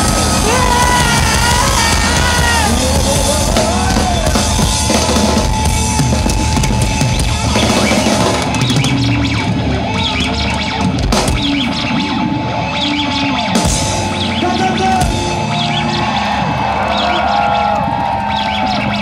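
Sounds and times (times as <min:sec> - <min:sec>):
distorted electric guitar: 0:00.0 - 0:19.0
drums: 0:00.0 - 0:19.0
live rock band: 0:00.0 - 0:19.0.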